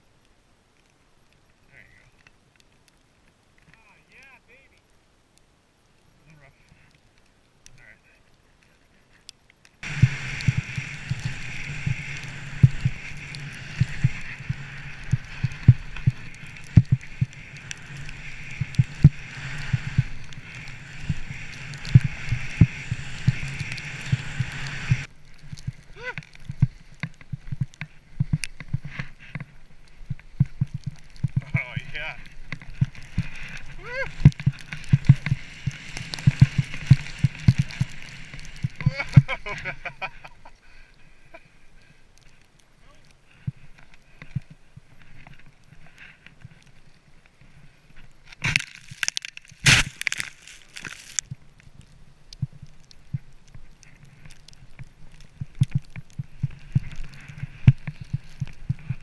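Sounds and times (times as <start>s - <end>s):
rush of snow and wind: 0.0s - 59.0s.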